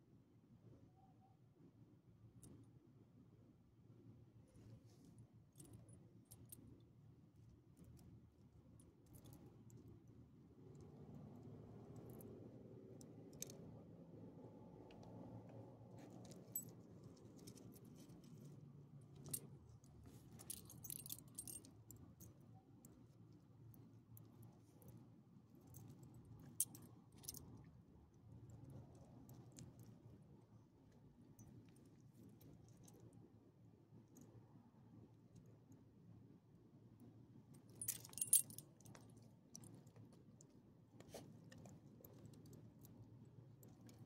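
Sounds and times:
dog collar tags jingling: 20.2 - 21.8, 37.8 - 38.6.

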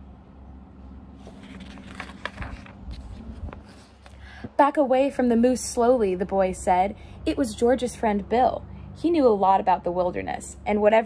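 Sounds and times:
paper page turning: 1.2 - 4.2.

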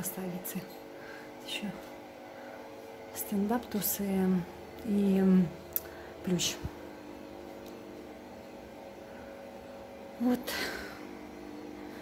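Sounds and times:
washing machine running: 0.0 - 12.0.

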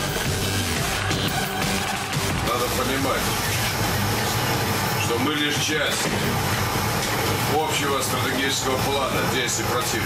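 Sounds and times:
indistinct voices: 0.0 - 6.2.

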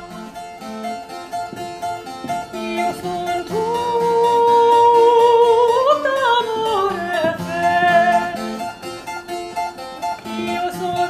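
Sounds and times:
harpsichord plucked notes: 0.0 - 11.0
female opera singer: 2.5 - 8.6, 10.2 - 11.0.

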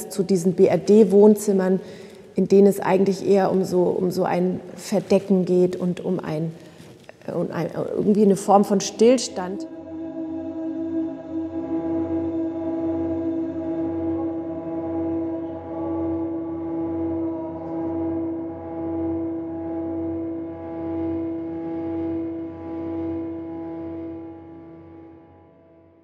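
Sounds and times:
ambient drone music: 9.3 - 26.0.

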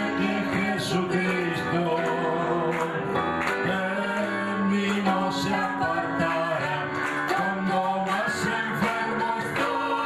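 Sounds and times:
backing music with steady beat: 0.0 - 10.0
man and woman singing duet: 0.0 - 10.0.

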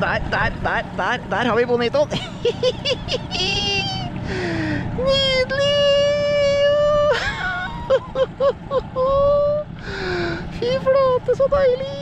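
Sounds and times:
breathy laughter: 2.2 - 4.8, 7.1 - 10.3
person squealing excitedly: 3.3 - 4.1.

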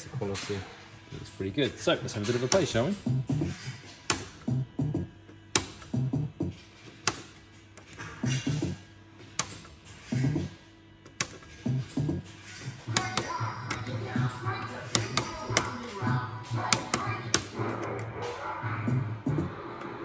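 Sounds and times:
electronic slot machine music: 2.1 - 3.6, 4.3 - 9.1, 10.0 - 20.0.

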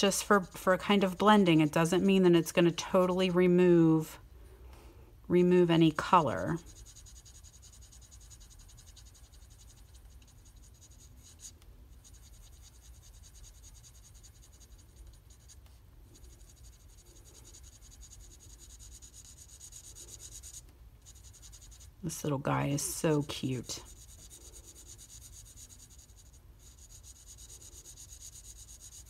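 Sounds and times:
marker tip scratching on card: 5.8 - 22.0, 23.2 - 29.0.

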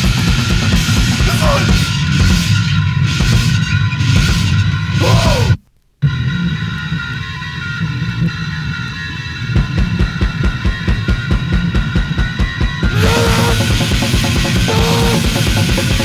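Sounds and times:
fast distorted punk music: 0.0 - 5.5, 8.6 - 16.0
fast drum beats: 0.0 - 5.6, 9.6 - 16.0.

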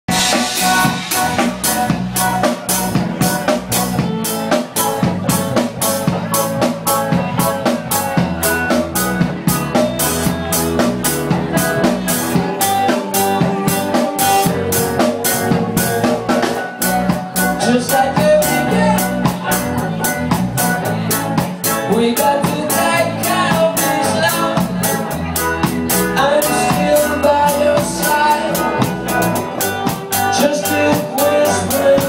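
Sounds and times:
drum kit beat with cymbals: 0.1 - 32.0
electric bass: 0.1 - 32.0
electric guitar: 0.1 - 32.0.

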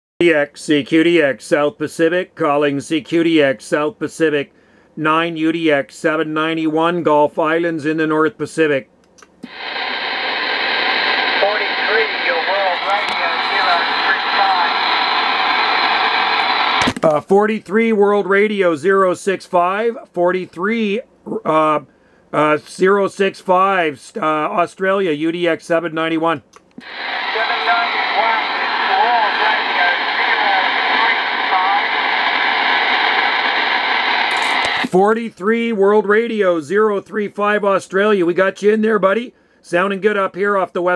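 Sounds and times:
radio static: 9.4 - 17.0, 26.8 - 35.0
faint distant radio voice: 11.3 - 15.0, 26.8 - 32.2.

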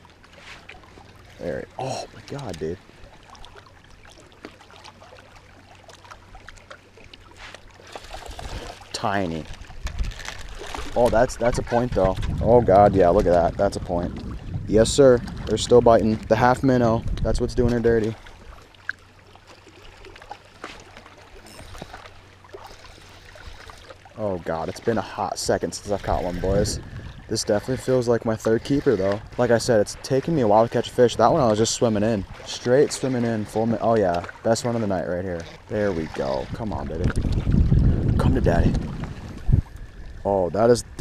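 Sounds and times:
water lapping on rocks: 0.0 - 41.0.

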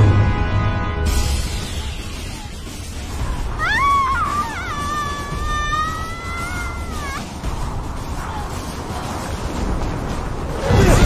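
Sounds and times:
low rumble: 1.3 - 11.0
high-pitched scream: 3.6 - 7.2.

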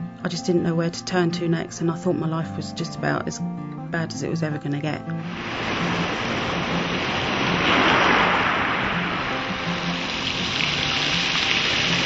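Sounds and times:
soft background music: 0.0 - 12.0
waves washing onto shingle beach: 5.2 - 12.0.

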